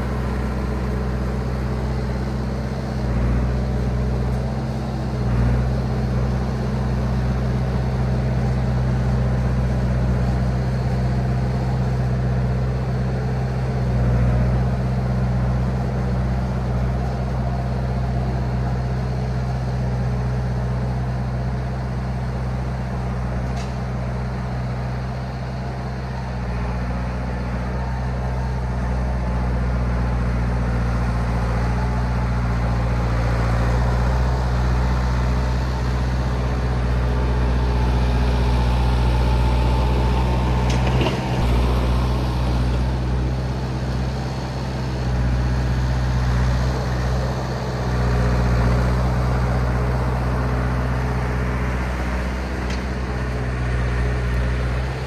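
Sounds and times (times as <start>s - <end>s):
bulldozer engine running: 0.0s - 55.0s.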